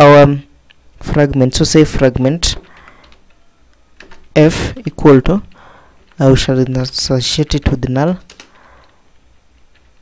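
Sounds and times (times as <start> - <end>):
keyboard typing clicks: 2.5 - 4.4, 8.2 - 10.0.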